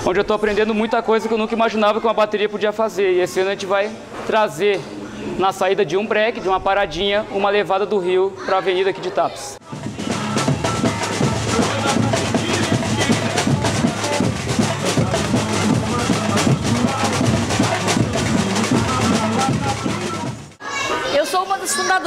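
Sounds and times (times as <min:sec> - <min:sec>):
person singing: 0:09.6 - 0:20.4
samba percussion beat: 0:09.6 - 0:20.6.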